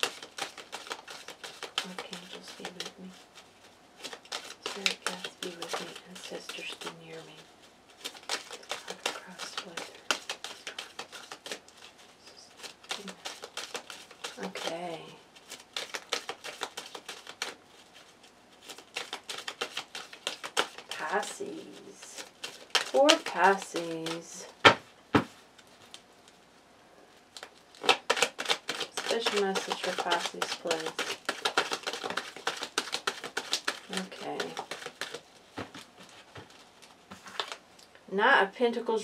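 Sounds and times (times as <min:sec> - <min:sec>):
cards being shuffled: 0:00.0 - 0:26.4, 0:27.2 - 0:37.6.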